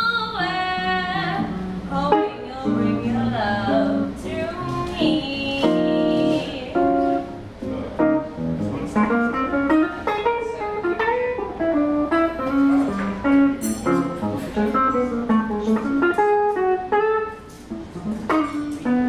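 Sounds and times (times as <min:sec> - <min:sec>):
electric guitar jazz solo: 0:00.0 - 0:19.0.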